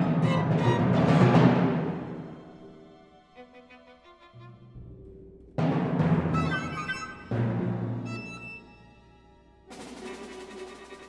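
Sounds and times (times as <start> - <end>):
timpani: 0.0 - 3.0, 4.6 - 11.0
orchestra playing: 0.0 - 11.0.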